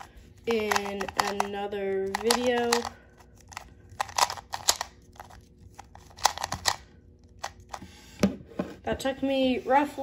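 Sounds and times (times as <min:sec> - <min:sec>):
puzzle cube clicking as turned: 0:00.6 - 0:02.9, 0:03.5 - 0:06.8.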